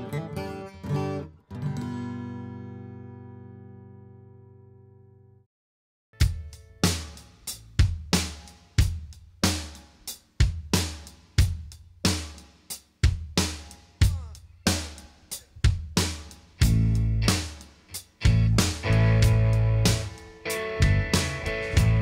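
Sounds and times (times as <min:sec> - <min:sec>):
electric guitar playing: 0:00.0 - 0:05.3, 0:18.3 - 0:22.0
drum kit beat: 0:06.2 - 0:22.0.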